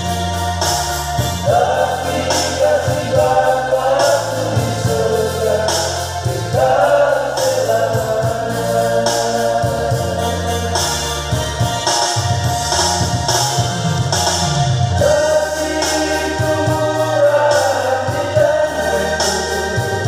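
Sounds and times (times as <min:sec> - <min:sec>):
men's group singing hymn: 0:00.0 - 0:11.8, 0:14.9 - 0:20.0
low keyboard notes: 0:00.0 - 0:20.0.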